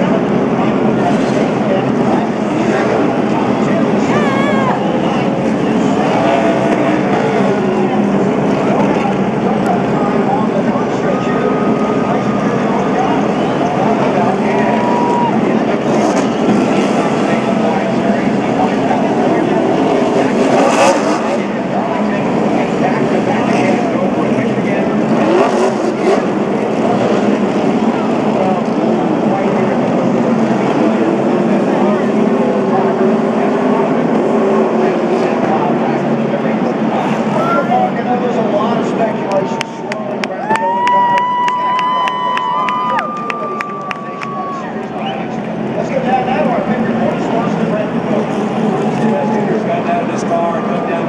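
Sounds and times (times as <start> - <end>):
race car engines: 0.0 - 51.0
crowd cheering and yelling: 2.0 - 21.1, 37.0 - 38.2, 38.8 - 46.2.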